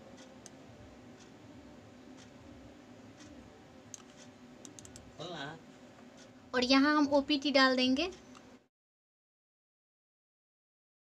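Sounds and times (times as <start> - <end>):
computer mouse clicks: 0.2 - 0.6, 3.2 - 5.1.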